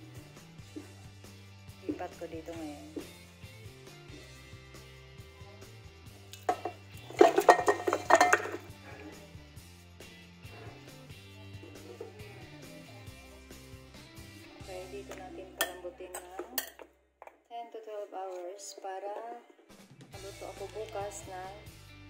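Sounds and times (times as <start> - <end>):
background music with bass line: 0.0 - 16.5, 19.8 - 22.0
bones clattering into a pot: 6.3 - 9.1, 15.0 - 16.9.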